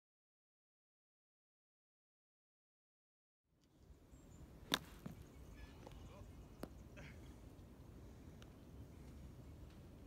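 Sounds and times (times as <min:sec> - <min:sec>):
faint outdoor background: 0:03.5 - 0:10.0.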